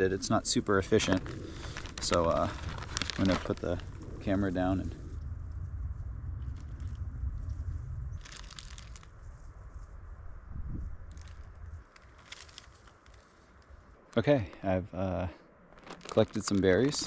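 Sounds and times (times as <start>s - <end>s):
low rumble: 0.0s - 11.8s
plastic bag crinkling: 0.9s - 4.4s, 8.2s - 9.1s, 11.1s - 13.7s, 15.7s - 17.0s.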